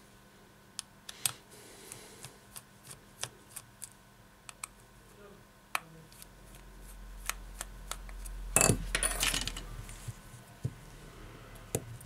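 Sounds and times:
metal parts clattering: 8.6 - 9.6.

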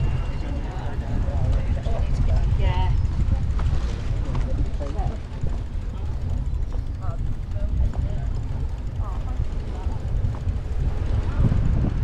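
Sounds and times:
faint voices: 0.0 - 12.0
wind buffeting microphone: 0.0 - 12.0.

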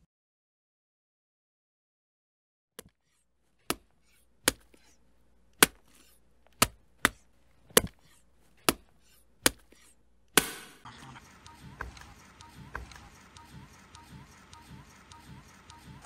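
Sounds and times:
sharp knocks: 5.6 - 10.8.

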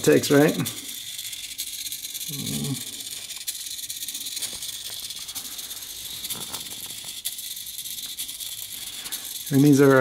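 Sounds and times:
servo rattles and clicks: 0.0 - 10.0.

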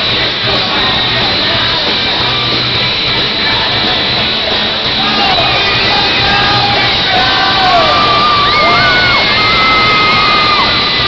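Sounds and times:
live rock band playing loudly: 0.0 - 11.0
fans screaming and whooping: 3.7 - 11.0.

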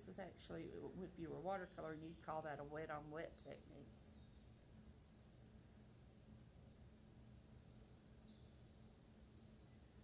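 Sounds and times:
faint high-pitched chirps: 0.0 - 10.0.

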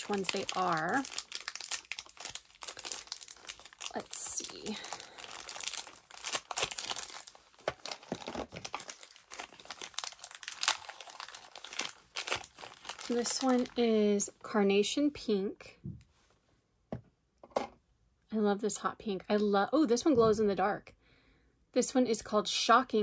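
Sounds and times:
packaging crinkling: 0.0 - 13.8.

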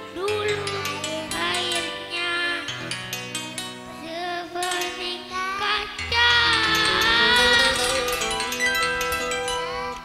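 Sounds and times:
child singing into microphone: 0.0 - 2.9, 3.9 - 8.4, 9.1 - 10.0
electronic keyboard accompaniment: 0.0 - 10.0.

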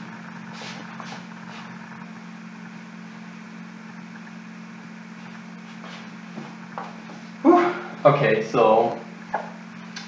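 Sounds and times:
steady low hum: 0.0 - 10.0
eraser swishing on whiteboard: 0.5 - 1.7.

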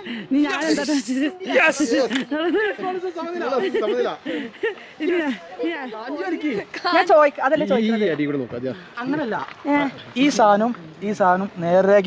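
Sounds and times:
people talking excitedly: 0.0 - 12.0.

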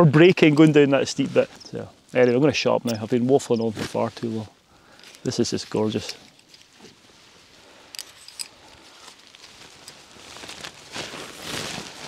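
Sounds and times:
tent fabric rustling: 0.1 - 2.4, 3.0 - 12.0
light clicks of tent pegs: 5.0 - 7.0, 7.8 - 9.2.

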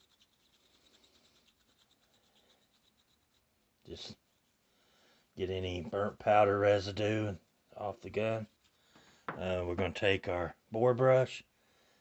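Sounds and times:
brush scrubbing metal: 0.0 - 4.6.

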